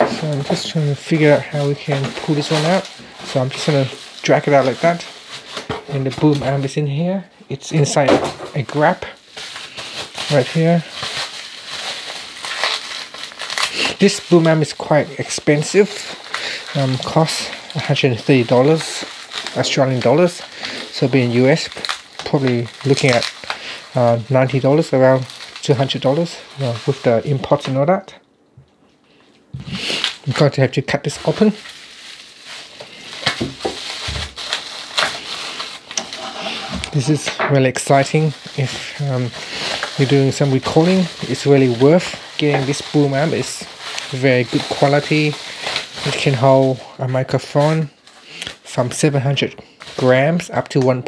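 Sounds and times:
bubble wrap crinkling: 0.0s - 28.2s, 28.8s - 51.0s
scissors snipping bubble wrap: 12.4s - 14.1s, 33.2s - 36.2s.

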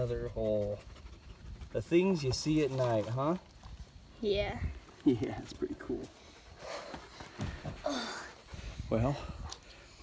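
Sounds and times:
dog panting: 0.0s - 2.5s, 6.0s - 9.2s.

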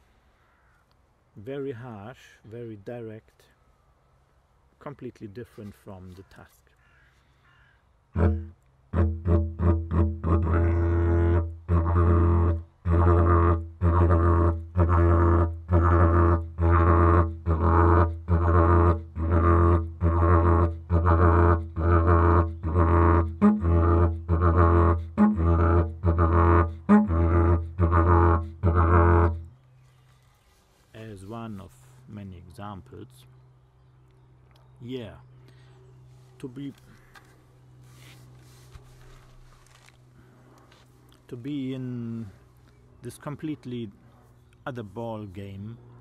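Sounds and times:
didgeridoo drone: 8.2s - 29.5s.

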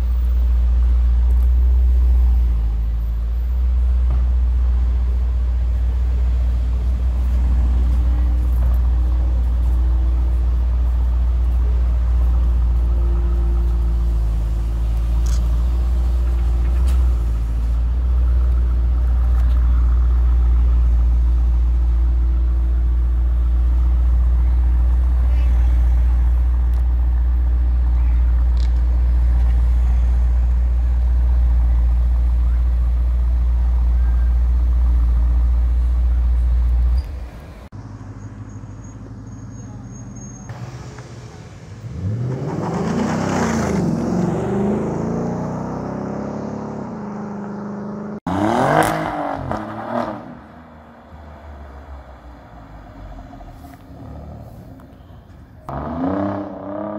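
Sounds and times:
car engine idling: 0.0s - 43.0s.

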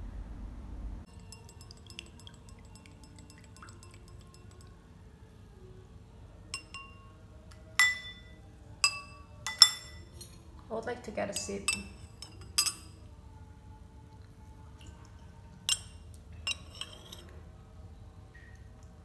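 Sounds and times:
spoon clinking against glass: 1.1s - 4.8s, 6.5s - 10.4s, 11.3s - 13.0s, 15.6s - 17.3s.

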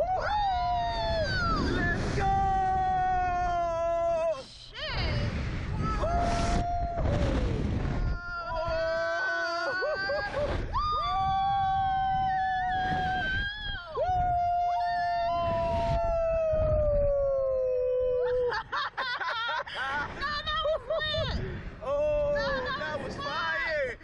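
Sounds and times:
person laughing: 9.5s - 10.6s, 18.2s - 21.3s.

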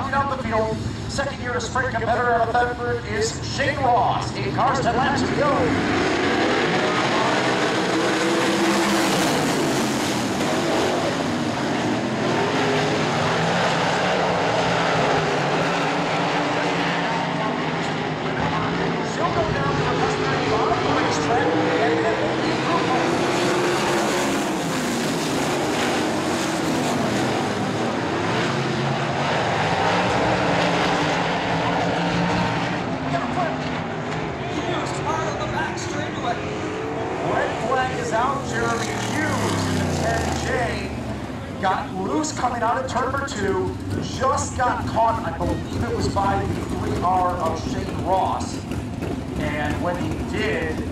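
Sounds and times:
racing car engines passing: 0.0s - 50.9s.

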